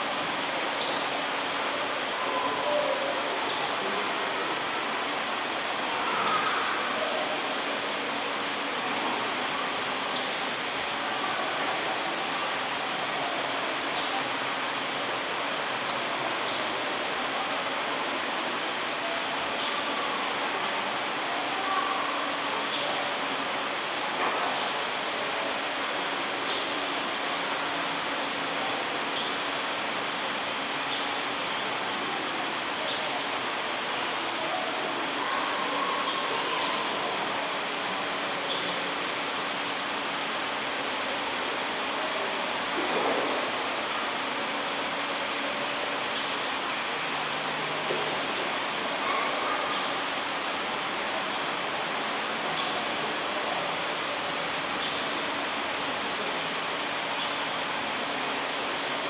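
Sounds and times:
steady background hiss: 0.0s - 59.0s.

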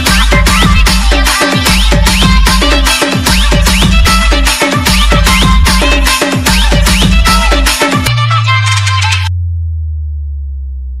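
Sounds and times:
dance remix music: 0.0s - 9.3s
deep bass note falling in pitch: 9.3s - 11.0s.

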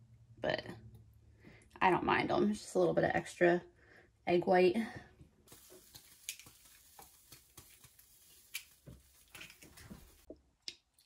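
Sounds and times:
faint hiss: 5.5s - 10.3s.

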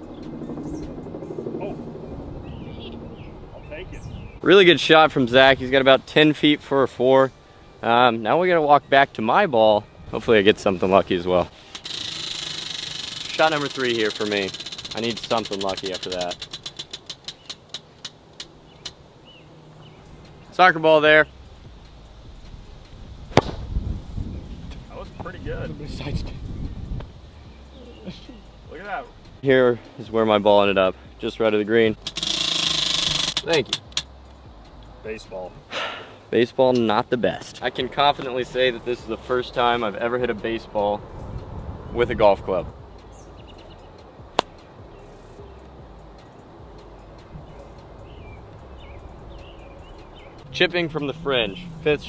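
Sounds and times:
golf club striking ball: 23.3s - 23.8s, 44.4s - 44.7s.

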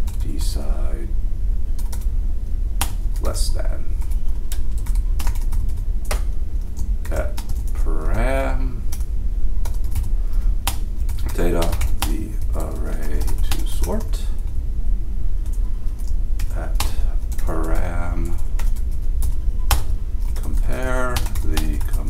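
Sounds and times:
steady low hum: 0.0s - 22.0s
typing on computer keyboard: 4.0s - 6.2s, 10.7s - 14.1s, 18.6s - 22.0s.

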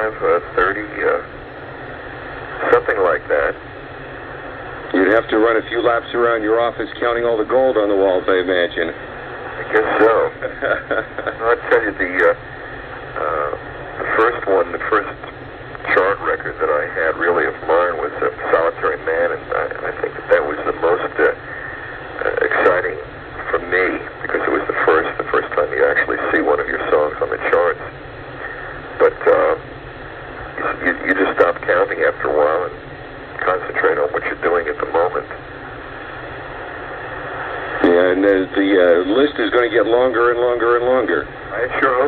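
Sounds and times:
man talking over telephone: 0.0s - 1.3s, 2.5s - 3.6s, 4.9s - 12.5s, 13.1s - 29.7s, 30.4s - 35.4s, 37.6s - 42.0s
person talking: 37.8s - 42.0s.

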